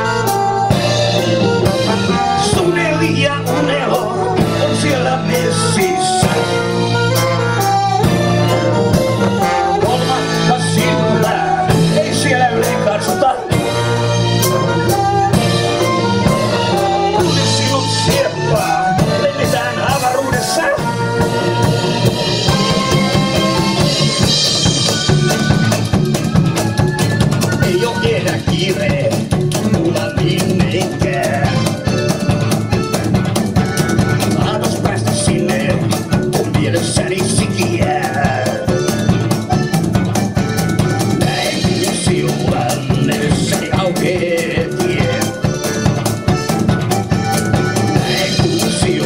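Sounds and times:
accordion: 0.0 - 49.0
blues band playing: 0.0 - 49.0.

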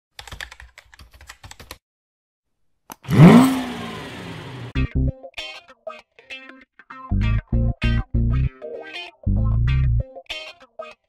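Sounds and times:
keyboard typing clicks: 0.2 - 1.8.

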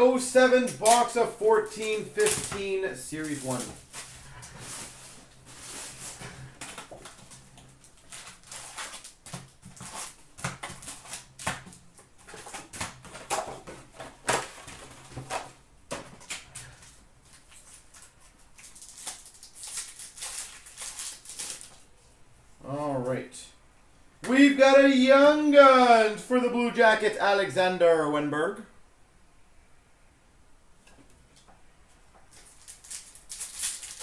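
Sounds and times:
card packs rustling and crinkling: 0.2 - 22.0, 32.3 - 34.0.

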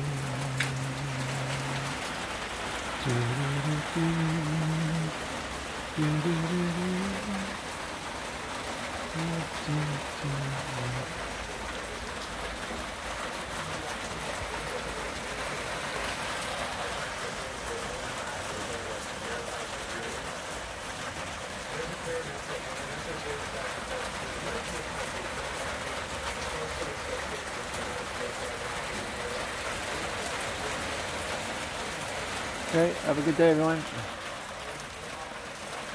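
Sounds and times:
person's voice: 0.0 - 7.8, 9.0 - 12.7, 13.5 - 20.6, 21.6 - 30.9, 32.0 - 35.9
steady rain falling: 0.0 - 35.9.

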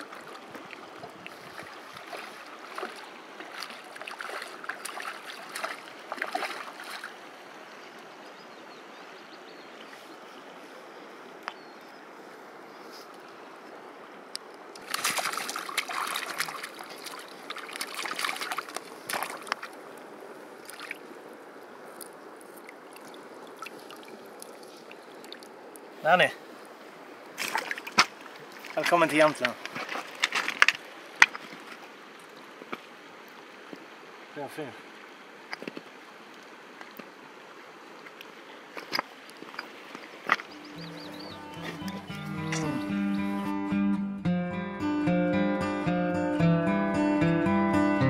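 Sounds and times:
water splashing and sloshing: 0.0 - 8.0, 14.3 - 43.0.

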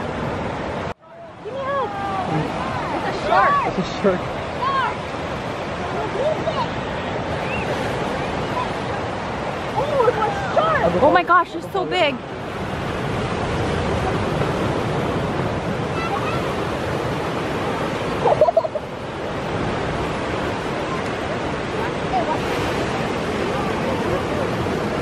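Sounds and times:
ocean surf breaking: 0.0 - 25.0.

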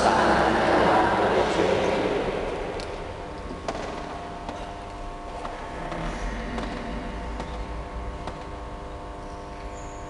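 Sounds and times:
steady hum of held tones: 0.0 - 10.0.

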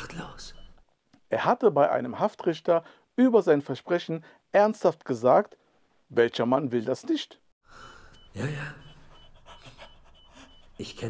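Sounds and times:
faint heavy breathing: 7.7 - 10.8.

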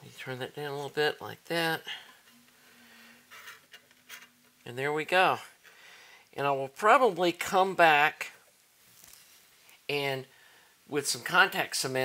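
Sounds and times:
soft rustle: 2.0 - 4.7, 8.5 - 9.9
hands handling wires in metal chassis: 3.3 - 4.6.

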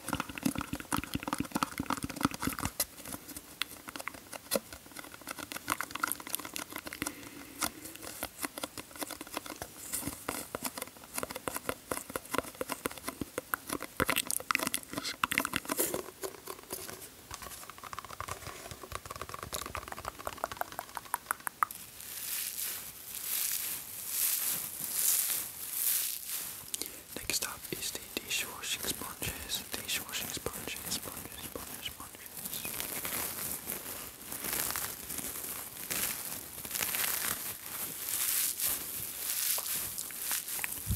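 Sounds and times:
sponge rubbing swishes: 22.0 - 26.6.

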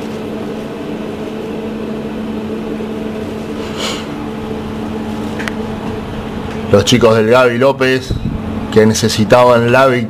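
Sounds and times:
machine-like hum: 0.0 - 10.0.

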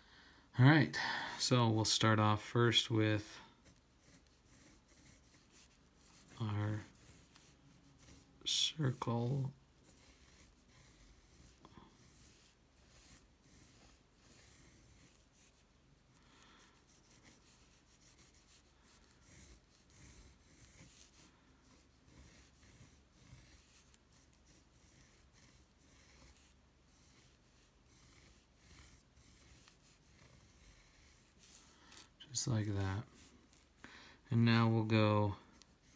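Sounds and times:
hand rubbing across paper: 2.7 - 33.8
pencil scratching on paper: 2.8 - 33.8, 34.4 - 35.9.

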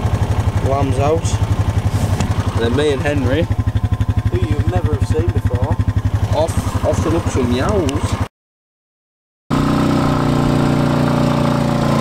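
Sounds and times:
quad bike engine chugging: 0.0 - 8.3, 9.5 - 12.0.

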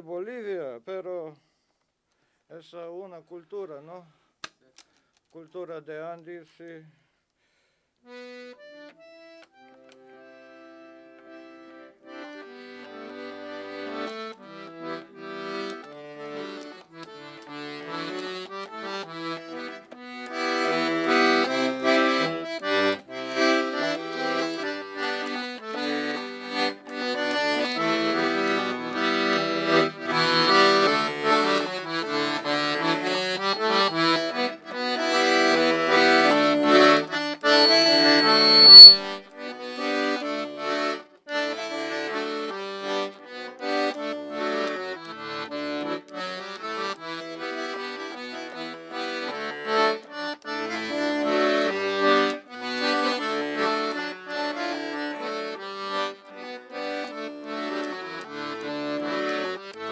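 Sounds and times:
piano accordion folk tune: 8.0 - 59.9
brief high-pitched tone: 37.4 - 39.1.

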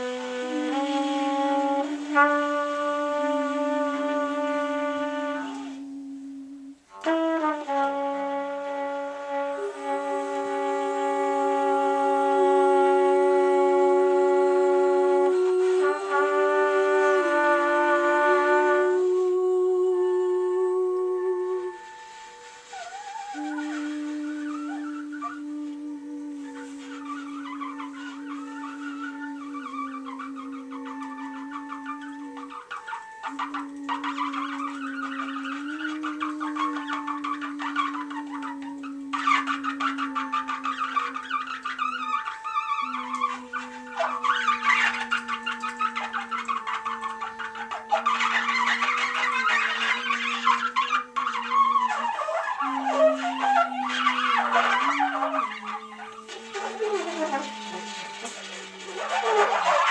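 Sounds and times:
rough trumpet sounds: 0.0 - 59.9
bowed upright bass: 23.4 - 59.9.

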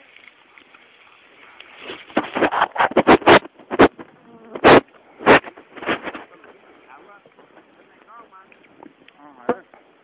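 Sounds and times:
microphone handling noise: 1.8 - 9.7.

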